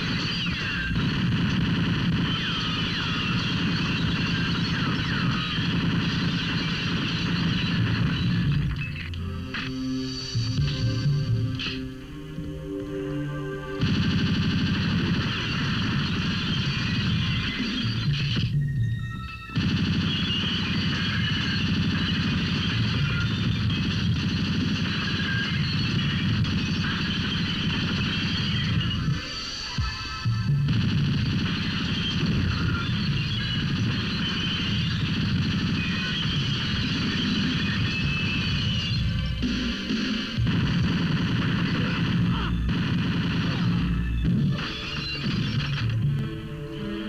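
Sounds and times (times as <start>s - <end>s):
heavy gunfire: 0.0s - 8.7s, 13.8s - 18.5s, 19.5s - 46.0s.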